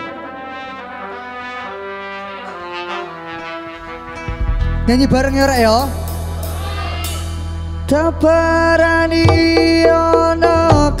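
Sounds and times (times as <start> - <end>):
band playing instrumental melody: 0.0 - 11.0.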